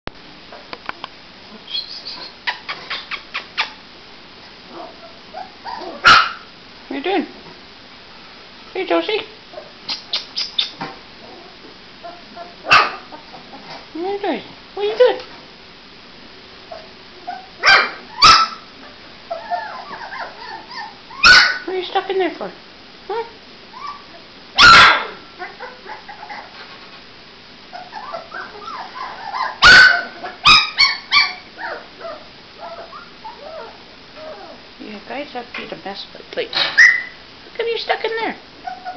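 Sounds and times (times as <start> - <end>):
puppy yipping: 4.8 - 6.5, 12.1 - 13.1, 16.7 - 18.7, 19.3 - 21.7, 23.8 - 26.5, 27.7 - 34.6, 36.8 - 37.2, 38.6 - 38.9
sharp yips: 9.9 - 10.8, 36.8 - 37.2.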